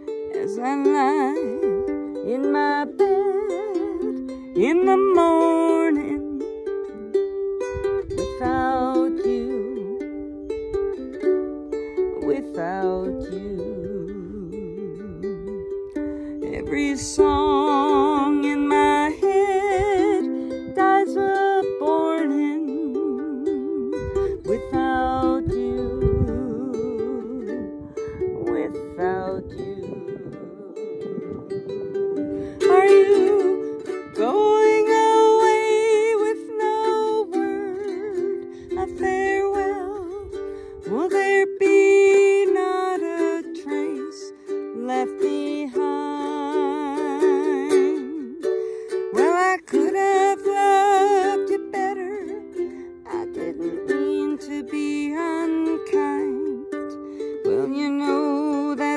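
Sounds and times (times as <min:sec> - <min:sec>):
ukulele strumming: 0:00.0 - 0:58.9
woman singing: 0:00.0 - 0:58.9.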